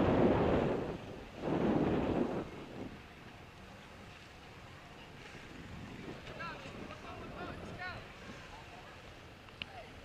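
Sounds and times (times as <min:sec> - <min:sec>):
wind rushing over microphone: 0:00.0 - 0:03.4, 0:05.4 - 0:08.6.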